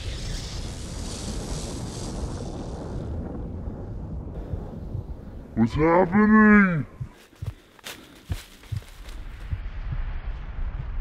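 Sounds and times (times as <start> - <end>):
rushing rumbling wind: 0.0 - 11.0.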